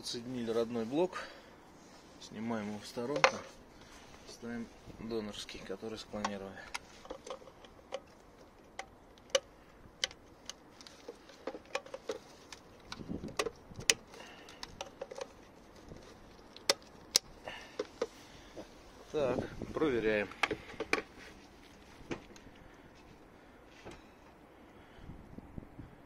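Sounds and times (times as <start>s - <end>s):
plastic connectors clicking: 6.2s - 18.1s.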